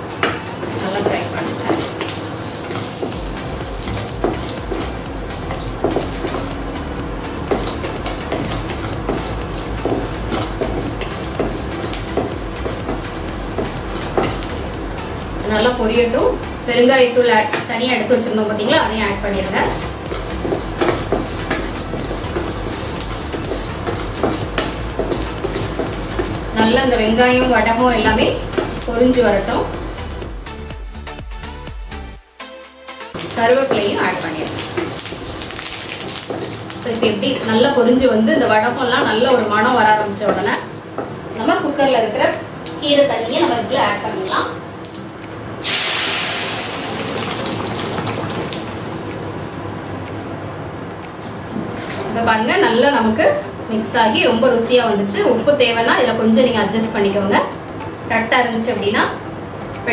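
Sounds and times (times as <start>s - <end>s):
spatula tapping pan: 0.2s - 15.0s, 19.5s - 29.7s, 33.2s - 44.4s
shallots sizzling in oil: 0.4s - 30.3s, 33.2s - 49.0s
spatula stirring and scraping pan: 7.4s - 15.2s, 19.6s - 30.1s.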